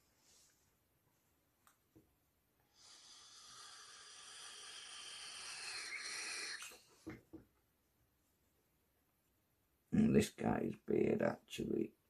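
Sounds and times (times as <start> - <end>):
person's hissing breath: 2.7 - 7.0.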